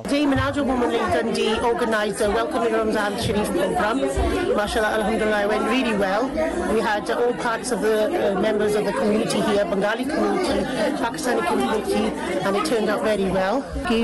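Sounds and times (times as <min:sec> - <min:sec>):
background voices chattering: 0:00.0 - 0:14.0.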